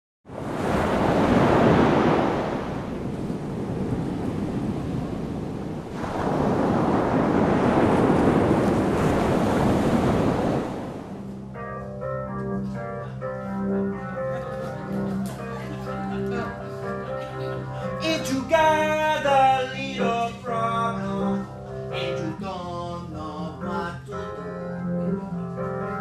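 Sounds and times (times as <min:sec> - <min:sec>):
ocean surf washing in: 0:00.3 - 0:11.5.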